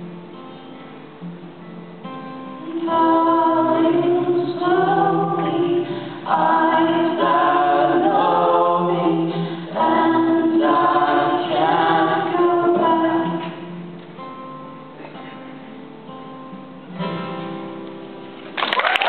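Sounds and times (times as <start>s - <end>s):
acoustic guitar: 0.0s - 18.7s
woman and man singing: 2.6s - 13.6s.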